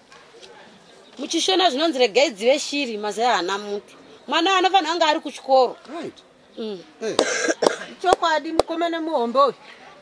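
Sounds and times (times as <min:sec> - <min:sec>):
cough: 0:07.0 - 0:08.0.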